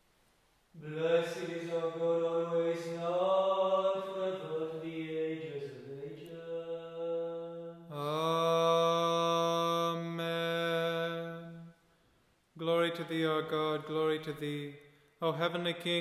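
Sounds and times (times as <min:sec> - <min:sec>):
man chanting a prayer: 0:00.8 - 0:11.7, 0:12.6 - 0:16.0.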